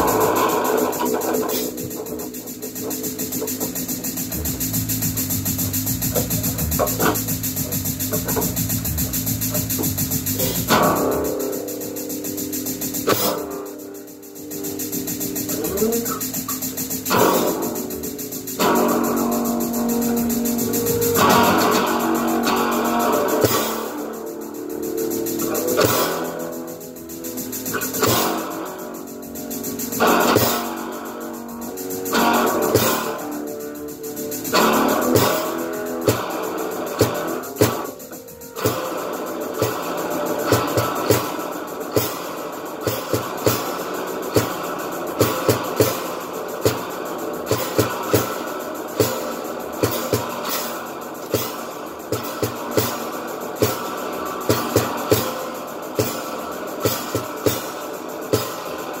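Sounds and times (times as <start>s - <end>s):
guitar ringing notes: 0.0s - 12.5s, 13.1s - 42.3s
loud guitar chords: 0.0s - 59.0s.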